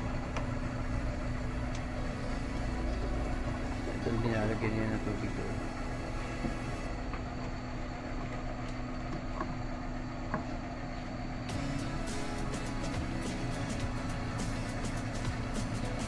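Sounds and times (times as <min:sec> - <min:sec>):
vehicle engine idling: 0:00.0 - 0:08.6.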